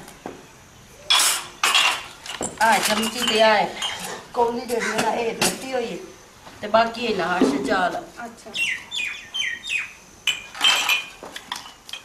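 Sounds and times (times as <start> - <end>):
bird chirping: 8.5 - 10.4.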